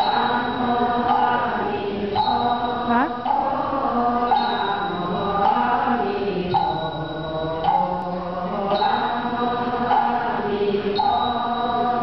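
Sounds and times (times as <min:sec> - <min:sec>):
monks chanting in unison: 0:00.0 - 0:12.0.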